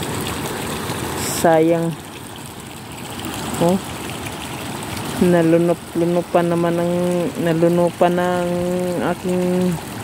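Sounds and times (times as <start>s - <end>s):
floodwater running: 0.0s - 10.0s.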